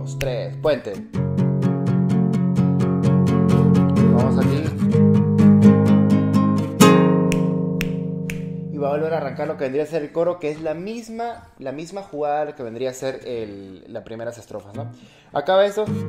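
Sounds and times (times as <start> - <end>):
acoustic guitar strumming chords: 0.0 - 9.8, 15.8 - 16.0.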